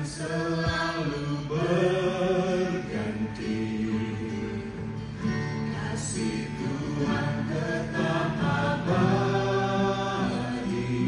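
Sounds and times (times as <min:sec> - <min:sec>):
group singing a worship song: 0:00.0 - 0:11.0.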